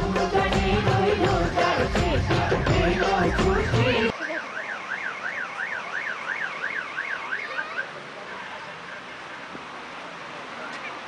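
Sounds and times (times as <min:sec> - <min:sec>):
car alarm warbling: 0:02.6 - 0:07.9.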